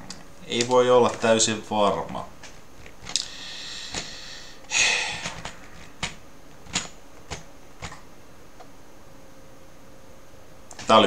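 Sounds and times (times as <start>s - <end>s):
low steady hiss: 6.1s - 11.0s.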